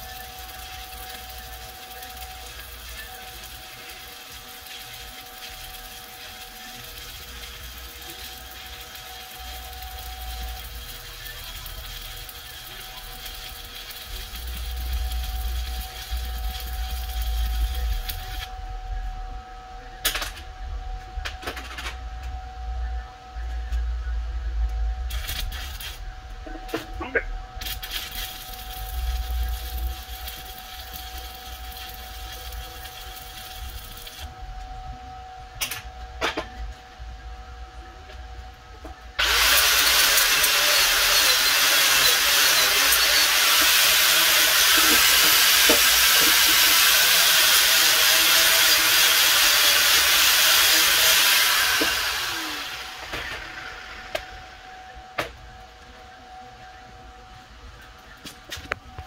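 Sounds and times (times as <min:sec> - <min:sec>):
stick welding arc burning: 0:00.0 - 0:18.5, 0:25.0 - 0:34.4, 0:38.8 - 0:55.8.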